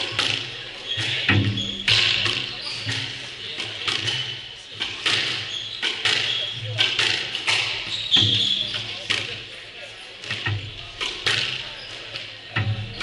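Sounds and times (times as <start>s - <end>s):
sneaker squeaks on wooden floor: 0.0s - 3.2s, 5.1s - 9.1s
squash balls hitting walls: 0.0s - 9.4s.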